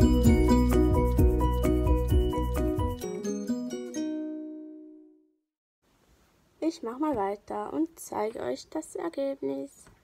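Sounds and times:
faint room noise: 0:05.8 - 0:10.0.

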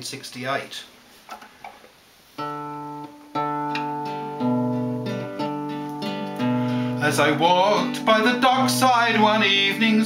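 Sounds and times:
acoustic guitar chords strummed: 0:02.4 - 0:10.0.

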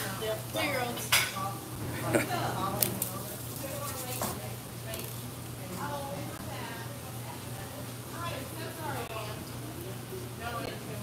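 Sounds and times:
steady low hum: 0:01.5 - 0:08.2
background voices talking: 0:01.5 - 0:11.0.

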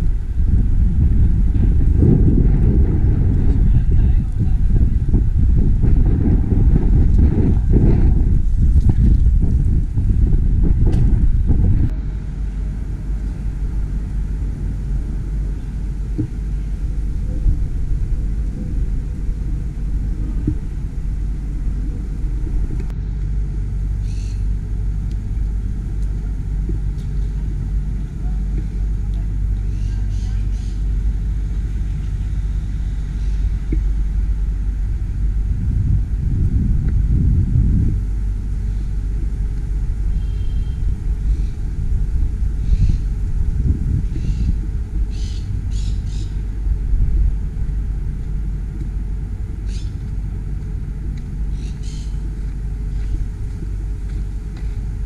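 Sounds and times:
low rumble: 0:00.0 - 0:55.0.

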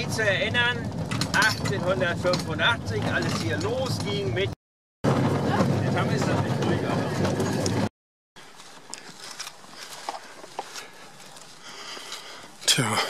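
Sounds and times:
tram rumbling on rails: 0:00.0 - 0:07.9.

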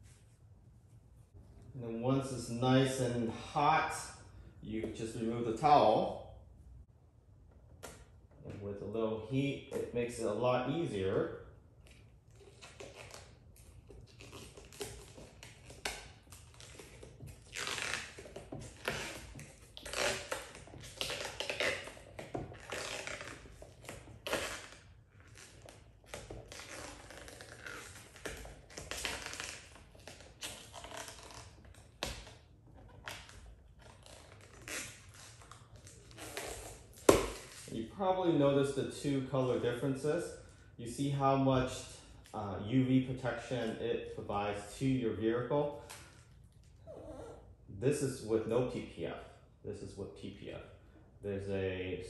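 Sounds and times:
plastic film peeling and crackling: 0:11.8 - 0:37.8.

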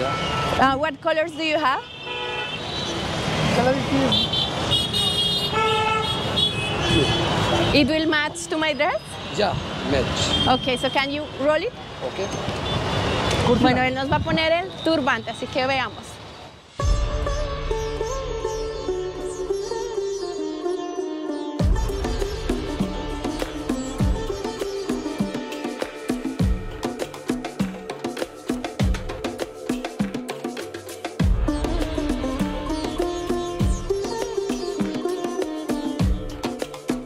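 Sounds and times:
vehicle horns honking: 0:00.0 - 0:09.4, 0:10.2 - 0:16.0
traffic engine noise: 0:00.0 - 0:16.8
sitar melody over drone: 0:16.8 - 0:26.0.

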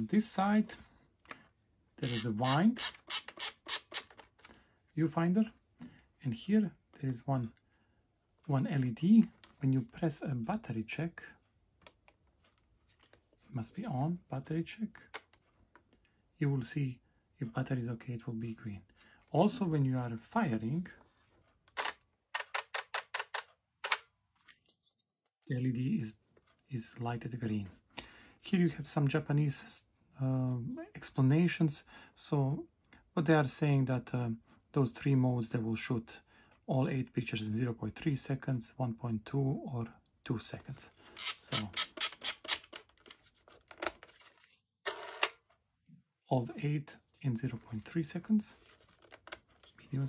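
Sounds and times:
camera handling clicks: 0:21.8 - 0:24.0.

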